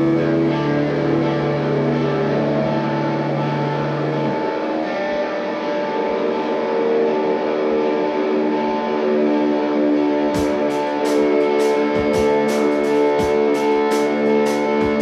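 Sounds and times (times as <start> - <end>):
electric guitars and bass droning: 0.0 - 15.0.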